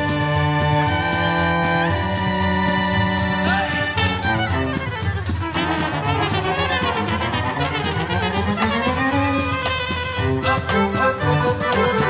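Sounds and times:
live band instrumental music: 0.0 - 12.0.

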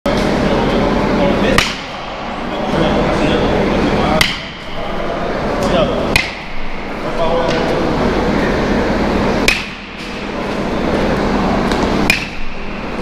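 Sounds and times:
bat hitting baseballs: 1.5 - 2.4, 4.0 - 4.8, 5.6 - 6.8, 9.4 - 10.7, 11.7 - 12.9.

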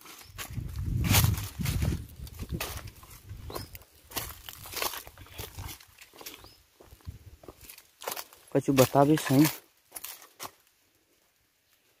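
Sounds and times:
footsteps crunching on dry leaves: 0.0 - 10.8.

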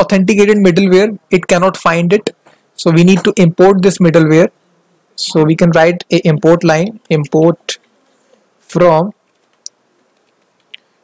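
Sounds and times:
keyboard keys clicking: 9.2 - 10.8.

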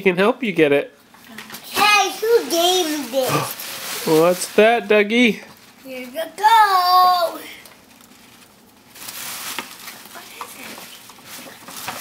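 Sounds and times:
tissue paper rustling: 1.7 - 4.9, 5.5 - 12.0.

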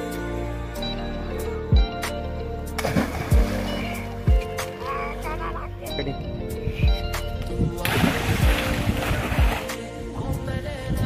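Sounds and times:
background music with heavy bass: 0.0 - 11.0
person splashing into pond: 2.8 - 4.0, 7.8 - 9.8.

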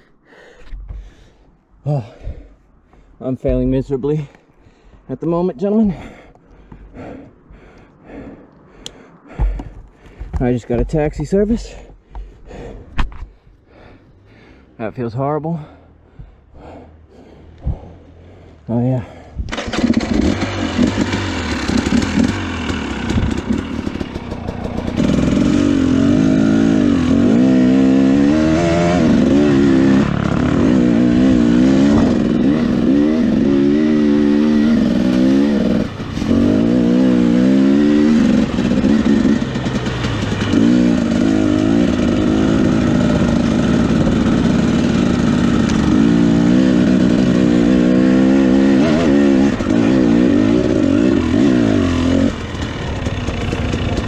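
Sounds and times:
two-stroke motorcycle engine revving: 19.5 - 54.0.

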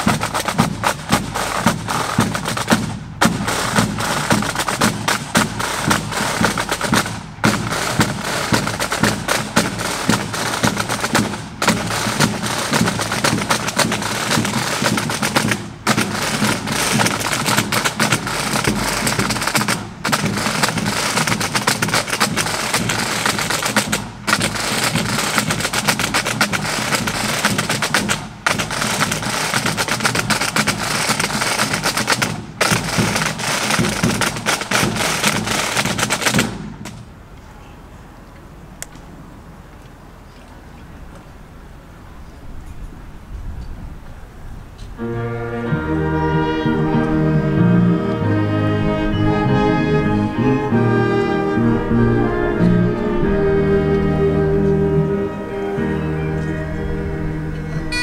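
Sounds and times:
snare drums marching beat: 0.0 - 37.0.

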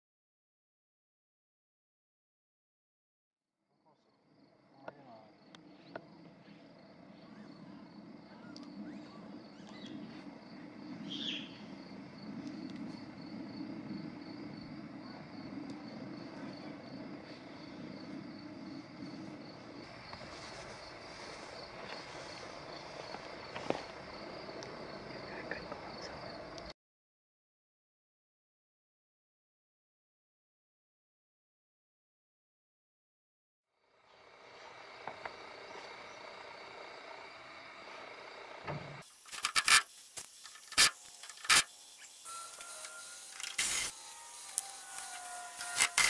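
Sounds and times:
outdoor ambience: 3.7 - 26.8, 33.7 - 46.0
crickets chirping: 3.8 - 26.7, 33.8 - 46.0.

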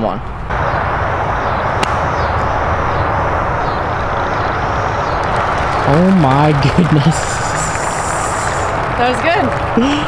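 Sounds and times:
steady rushing background noise: 0.0 - 10.0
golf club striking ball: 1.8 - 2.6.

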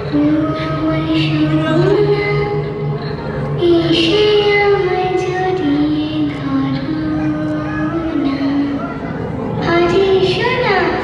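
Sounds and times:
sustained musical backing: 0.0 - 11.0.

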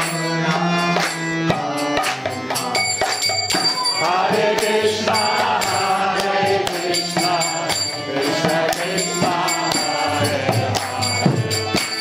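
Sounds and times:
harmonium drone: 0.0 - 12.0
hand cymbals ringing: 1.8 - 12.0.

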